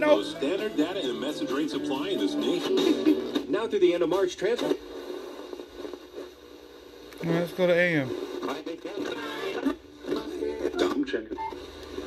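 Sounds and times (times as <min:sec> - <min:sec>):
radio static hiss: 0:00.0 - 0:12.0.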